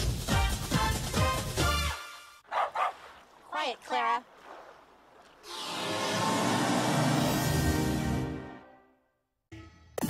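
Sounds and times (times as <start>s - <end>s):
dog yelps: 2.5s - 3.0s
dog barking: 2.5s - 3.1s.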